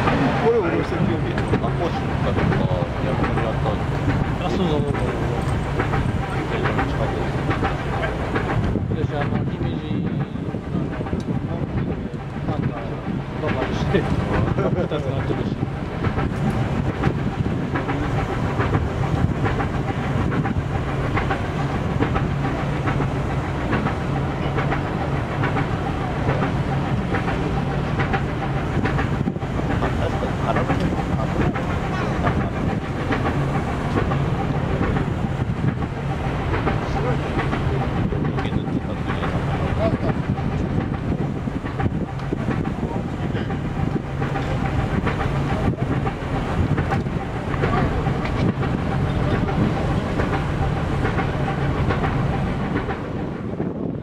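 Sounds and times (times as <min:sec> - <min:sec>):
large engine droning: 0:00.0 - 0:54.0.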